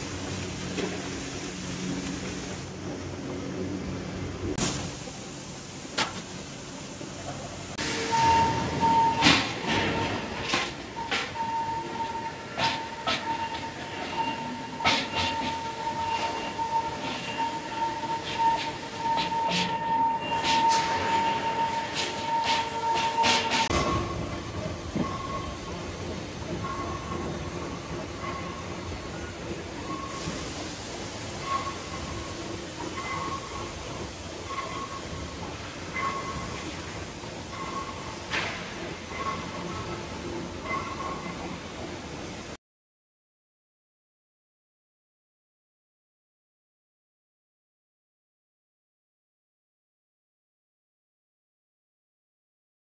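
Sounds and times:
factory floor noise: 0.0 - 42.6.

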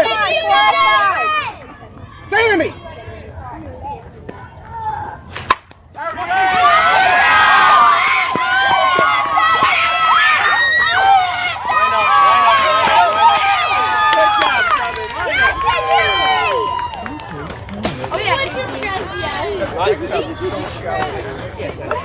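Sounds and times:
bat hitting ball: 5.3 - 5.8
crowd screaming and cheering: 6.0 - 20.5.

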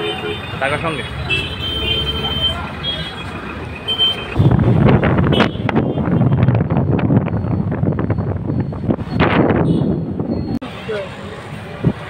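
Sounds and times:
busy road traffic: 0.0 - 12.0.

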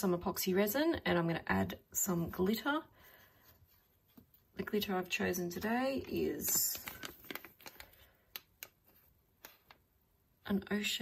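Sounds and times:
plastic bag crinkling: 5.9 - 9.8.

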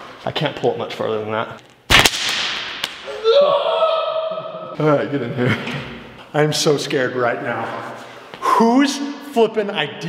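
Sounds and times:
resistance band snapping: 1.9 - 3.1
drawn-out cry of pain: 3.1 - 4.7.

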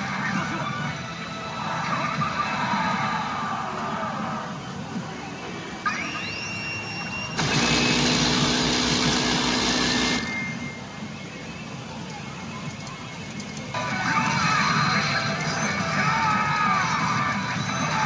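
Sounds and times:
pachinko machine sound effects: 7.4 - 10.8.

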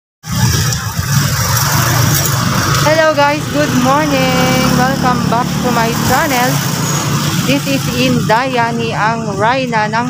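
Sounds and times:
motorcycle engine running: 0.2 - 10.0
traffic noise: 0.2 - 10.0.

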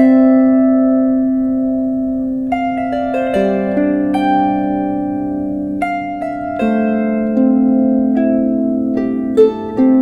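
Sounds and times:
plucked lyre harp chord: 0.0 - 10.0.

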